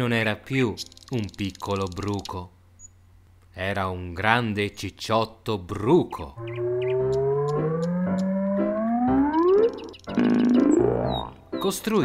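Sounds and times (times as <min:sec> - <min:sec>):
light background music: 0:00.0 - 0:02.0, 0:06.4 - 0:12.0
synth tone sliding upward: 0:06.4 - 0:11.4
soft ticking beat: 0:06.5 - 0:11.7.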